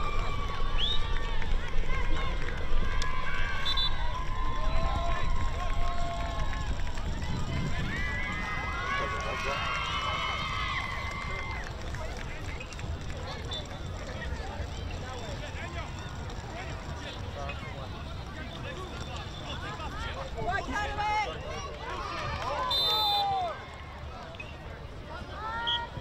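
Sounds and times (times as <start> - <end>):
low outdoor background noise: 0.0 - 26.0.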